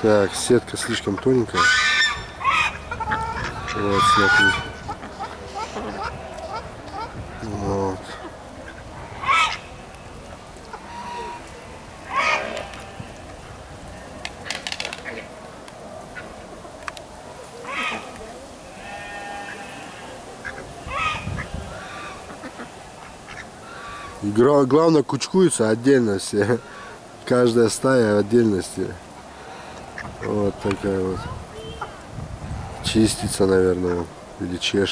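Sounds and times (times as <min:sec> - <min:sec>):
geese honking: 0:00.0 - 0:15.4, 0:17.3 - 0:24.2, 0:26.4 - 0:27.0, 0:29.3 - 0:30.8
quiet bird calls: 0:17.3 - 0:24.2, 0:26.6 - 0:27.1.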